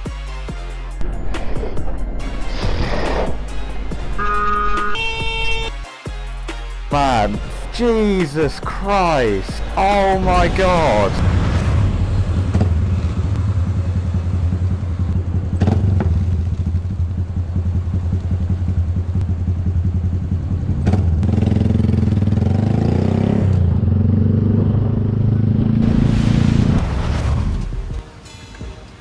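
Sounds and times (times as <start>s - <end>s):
motorcycle engine idling and revving: 11.2s - 26.1s.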